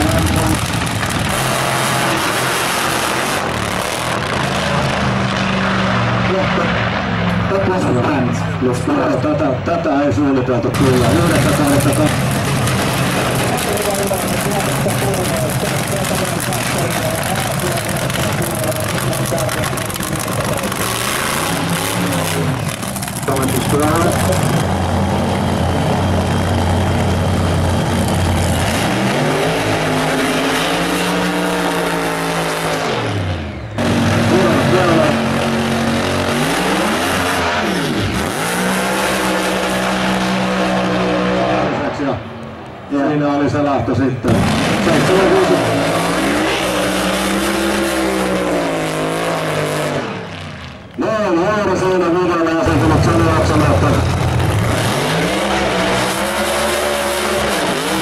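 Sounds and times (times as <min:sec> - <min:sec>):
racing car engine revving: 0:00.0 - 0:09.8, 0:10.4 - 0:43.2, 0:44.2 - 0:58.0.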